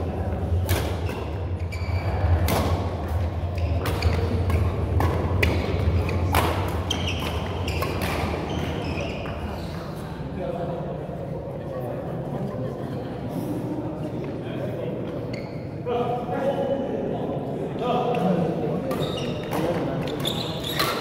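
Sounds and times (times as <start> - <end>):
rackets striking shuttlecock: 0.6 - 1.4, 2.4 - 8.7.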